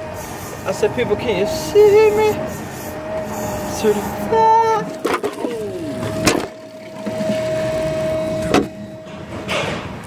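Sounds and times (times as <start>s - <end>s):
forklift humming: 0.0s - 10.0s.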